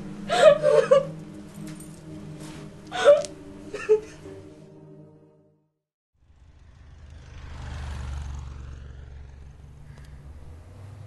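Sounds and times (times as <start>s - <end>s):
car engine rumble inside cabin: 8.4s - 11.0s.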